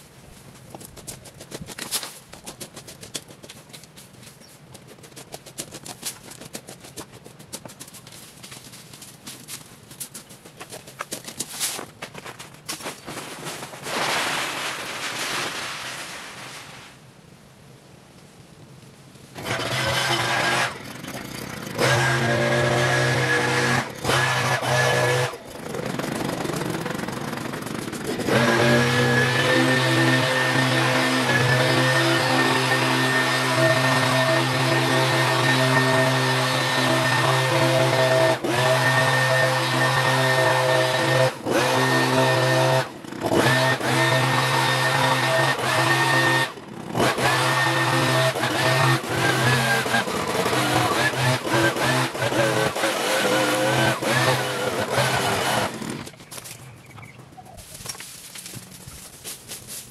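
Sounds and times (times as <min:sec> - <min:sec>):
leaf blower engine: 0:19.4 - 0:56.6.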